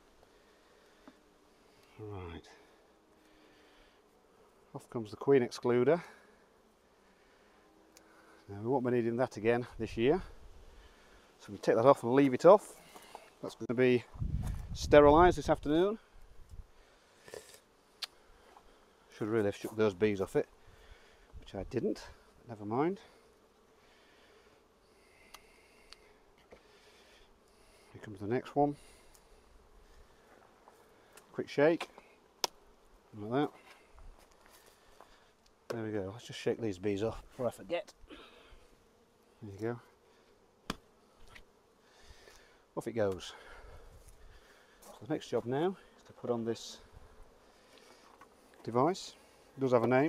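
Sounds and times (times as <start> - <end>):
honeybees buzzing: 0.0 - 50.0
sharp knock on hive: 40.6 - 40.9.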